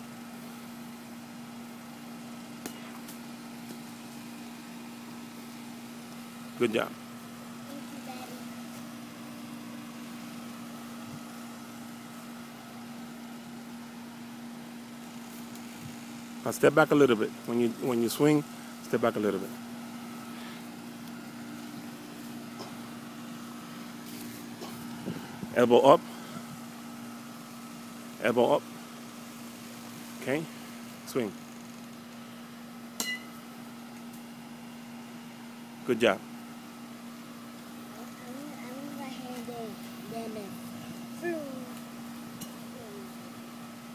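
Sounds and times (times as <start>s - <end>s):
air conditioner unit humming: 0.0s - 43.9s
metal bat hitting ball: 33.0s - 33.3s.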